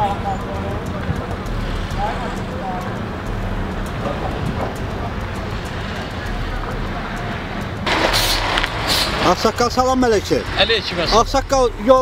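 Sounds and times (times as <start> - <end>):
faint indistinct voices: 0.0 - 12.0
low vehicle rumble: 0.0 - 12.0
sudden loud rush of noise: 5.5 - 9.6.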